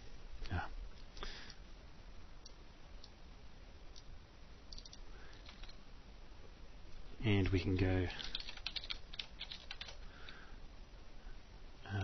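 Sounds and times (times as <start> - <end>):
computer keyboard typing: 4.7 - 5.8, 7.4 - 10.0.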